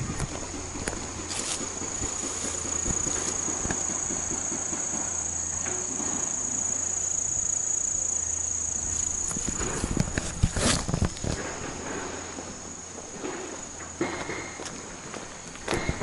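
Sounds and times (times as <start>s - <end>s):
faint low rustles and knocks: 0.0s - 6.2s
insects droning: 0.0s - 16.0s.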